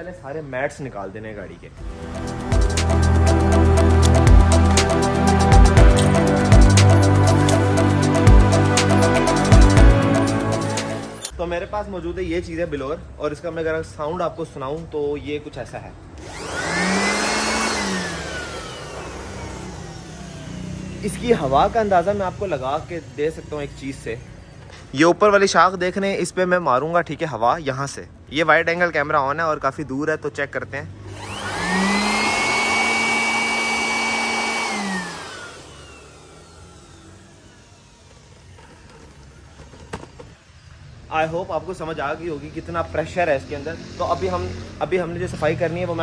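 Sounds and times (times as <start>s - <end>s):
electric blower whirring: 1.8s - 11.4s, 16.2s - 25.0s, 31.0s - 41.4s.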